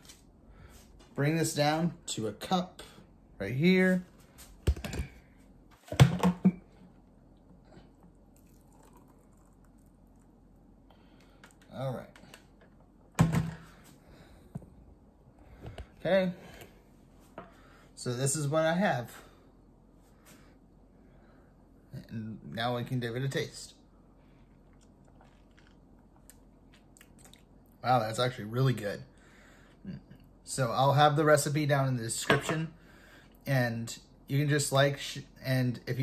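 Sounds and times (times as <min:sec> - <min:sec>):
man sipping and swallowing: 0:07.5 - 0:10.3, 0:24.3 - 0:27.5.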